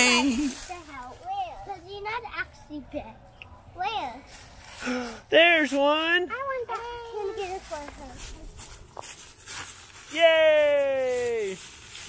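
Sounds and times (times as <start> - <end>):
dry leaves rustling underfoot: 4.3 - 5.2, 7.2 - 12.0.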